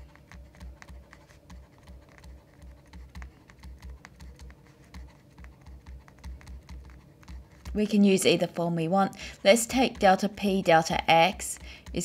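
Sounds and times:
stylus tapping on tablet screen: 0.0s - 12.0s.

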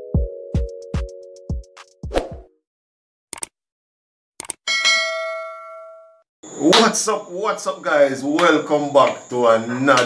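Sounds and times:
notification bell ding: 4.7s - 6.2s.

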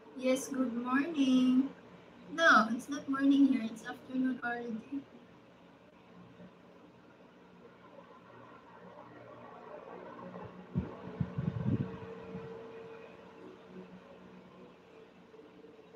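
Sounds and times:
faint mechanical hum: 0.0s - 15.9s
soft low bumps: 10.8s - 12.5s.

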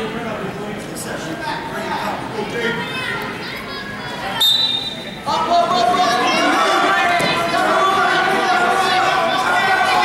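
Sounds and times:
spectators and coaches shouting: 2.5s - 10.0s
loud sustained yell: 5.3s - 10.0s.

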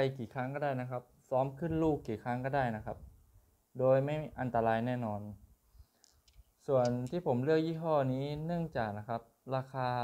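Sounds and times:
man speaking: 0.0s - 3.0s, 3.8s - 5.4s, 6.6s - 10.0s.

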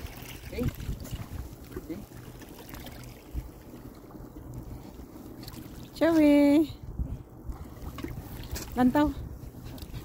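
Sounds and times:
wind rumbling on microphone: 0.0s - 2.0s, 2.6s - 10.0s.

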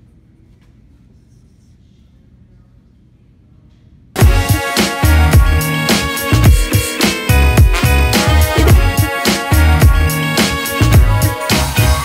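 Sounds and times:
low room hum: 0.0s - 4.2s.

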